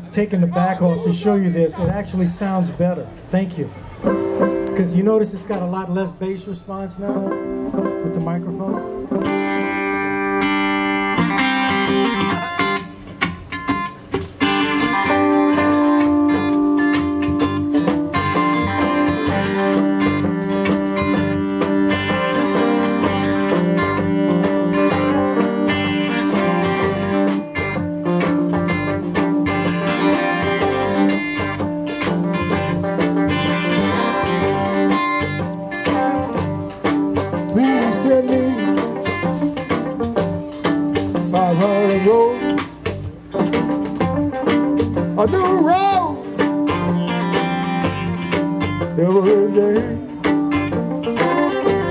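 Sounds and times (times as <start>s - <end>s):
banjo: 3.9s - 5.7s, 6.9s - 51.9s
electric guitar: 7.1s - 51.9s
fiddle bowing: 13.8s - 43.0s, 44.9s - 51.9s.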